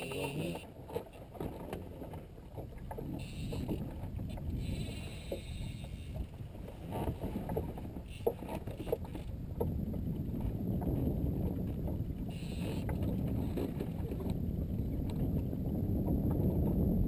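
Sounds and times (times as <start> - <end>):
waves lapping against boat hull: 0.0 - 17.0.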